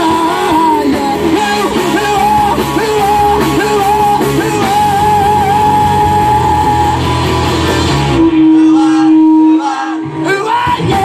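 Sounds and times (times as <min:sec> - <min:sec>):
rock band playing loudly: 0:00.0 - 0:11.0.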